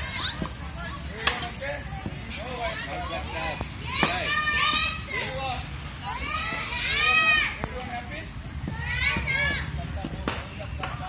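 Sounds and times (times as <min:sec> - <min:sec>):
children calling out: 0:02.7 - 0:05.4, 0:06.0 - 0:07.6, 0:08.7 - 0:09.8.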